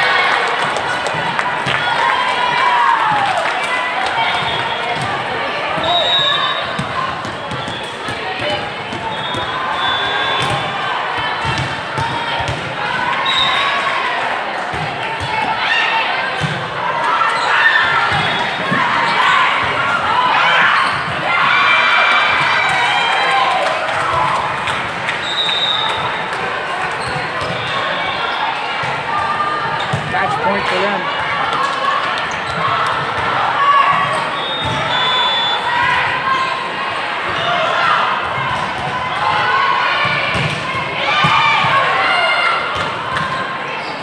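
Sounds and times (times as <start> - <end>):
players and spectators chattering: 0.0 - 44.0.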